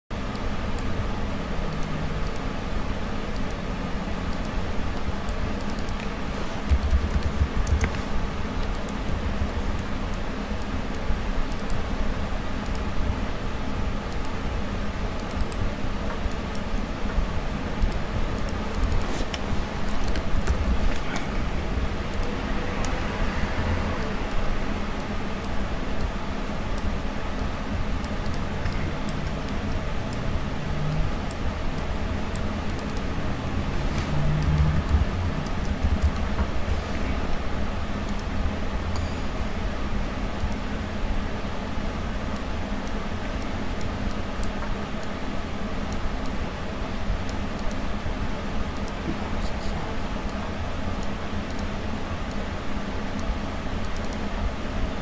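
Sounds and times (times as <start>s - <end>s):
low hum and hiss: 0.1s - 55.0s
low background rumble: 0.2s - 55.0s
computer mouse clicks: 1.7s - 2.5s, 3.3s - 3.6s, 4.3s - 11.9s, 12.6s - 13.0s, 14.0s - 14.4s, 15.1s - 21.3s, 22.1s - 23.1s, 23.9s - 37.2s, 38.0s - 39.2s, 40.3s - 40.7s, 42.3s - 45.2s, 47.2s - 47.8s, 48.7s - 49.2s, 50.2s - 54.3s
mouse and keyboard clicks: 4.3s - 8.0s, 34.0s - 37.1s.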